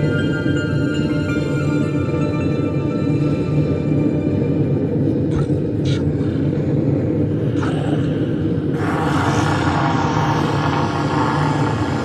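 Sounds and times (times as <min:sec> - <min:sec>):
dark droning music: 0:00.0 - 0:12.0
low sustained rumble: 0:06.1 - 0:12.0
hiss-like wash of noise: 0:08.7 - 0:12.0.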